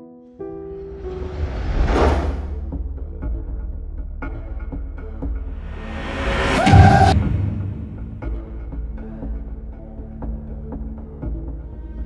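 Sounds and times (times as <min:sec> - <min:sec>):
low rumbling drone music: 0:00.6 - 0:12.0
whoosh sound effect: 0:05.6 - 0:08.6.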